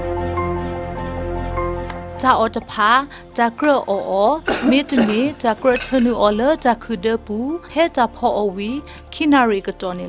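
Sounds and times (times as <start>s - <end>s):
person speaking: 3.4s - 6.3s
cutlery clinking on a plate: 4.5s - 6.2s.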